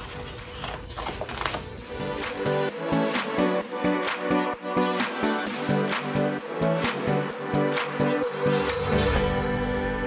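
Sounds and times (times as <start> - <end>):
background music: 0.0 - 10.0
electronic music with a beat: 1.8 - 10.0.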